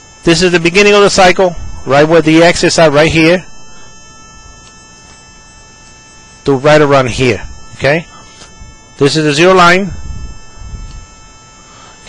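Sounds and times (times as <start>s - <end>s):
high-pitched electronic tones: 0.0s - 11.9s.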